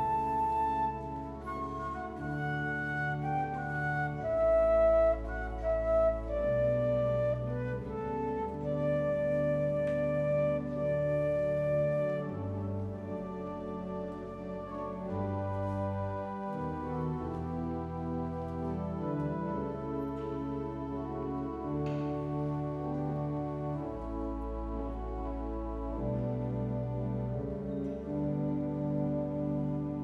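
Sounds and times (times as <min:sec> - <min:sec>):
flute playing slow melody: 0:00.0 - 0:30.0.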